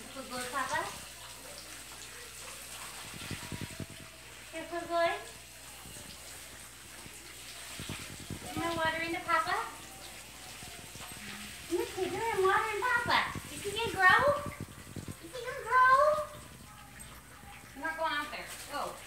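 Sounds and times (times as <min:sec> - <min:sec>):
hose spraying water: 0:00.0 - 0:19.0
water splashing: 0:00.0 - 0:19.0.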